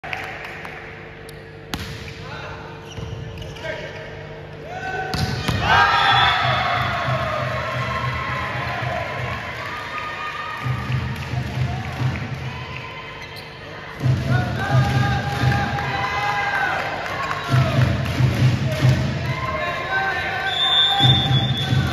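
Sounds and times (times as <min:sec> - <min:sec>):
volleyball struck and bouncing: 0:01.7 - 0:02.3, 0:05.1 - 0:08.2
players shouting: 0:04.6 - 0:10.8.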